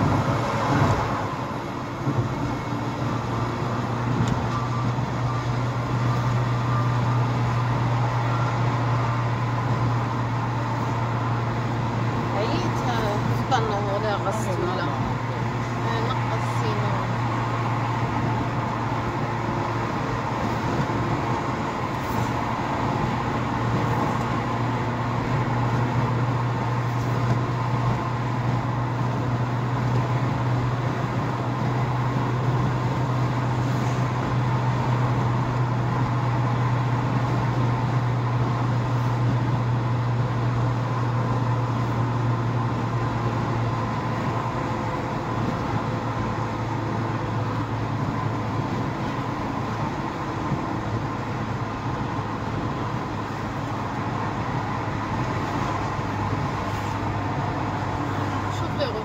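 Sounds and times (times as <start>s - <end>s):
car engine drone: 0.0s - 59.0s
tyre noise on road: 0.0s - 59.0s.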